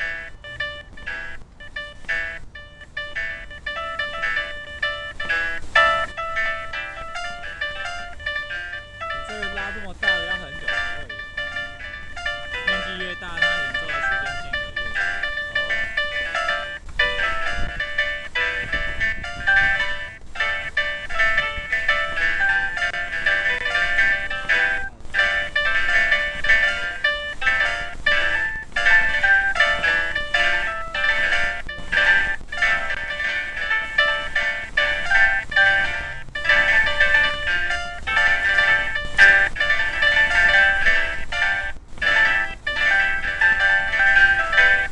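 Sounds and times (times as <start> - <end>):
electronic chime tones: 0.0 - 18.9
chime-like electronic tones: 0.0 - 44.9.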